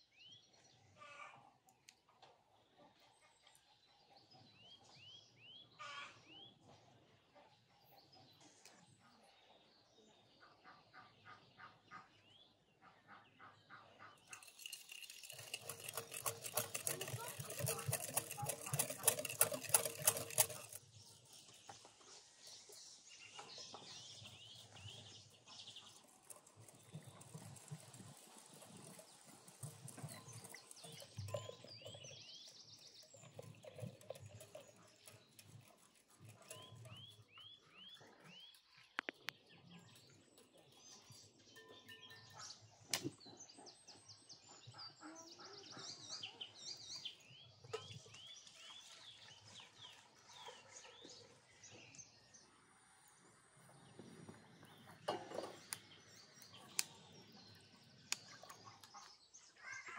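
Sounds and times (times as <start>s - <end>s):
birds chirping: 13.3s - 59.9s
wire whisk beating in glass bowl: 14.3s - 20.9s, 25.9s - 37.2s.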